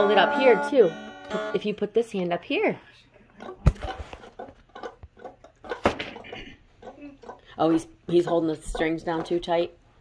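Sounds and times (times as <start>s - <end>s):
muted electric guitar plucks: 0.0s - 1.9s.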